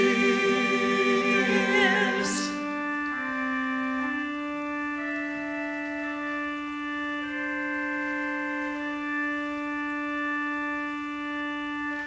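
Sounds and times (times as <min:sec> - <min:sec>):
organ sustained chord: 0:00.0 - 0:12.0.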